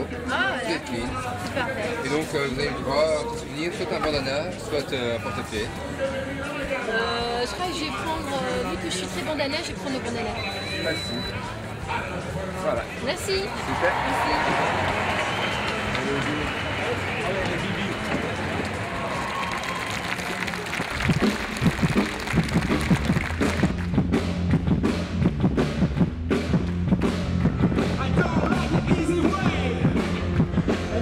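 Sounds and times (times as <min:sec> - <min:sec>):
festival crowd noise: 0:00.0 - 0:31.0
live rock band playing: 0:21.1 - 0:31.0.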